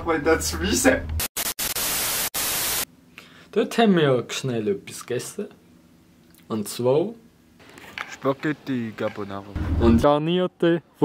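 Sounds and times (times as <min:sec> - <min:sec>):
white-noise static hiss: 0:00.4 - 0:10.8.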